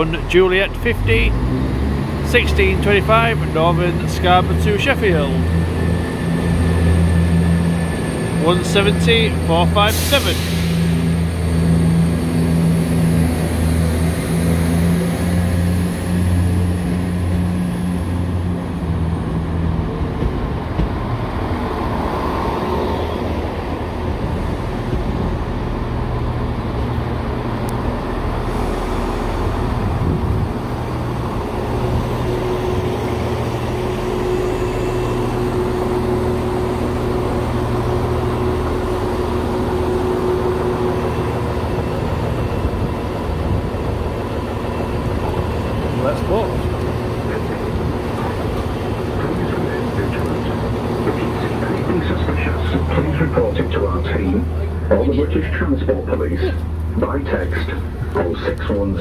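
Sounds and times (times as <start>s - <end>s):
diesel train engines humming: 0.0s - 59.0s.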